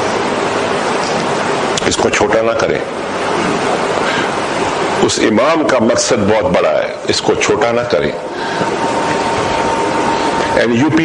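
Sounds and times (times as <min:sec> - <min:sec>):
steady rushing hiss: 0:00.0 - 0:11.0.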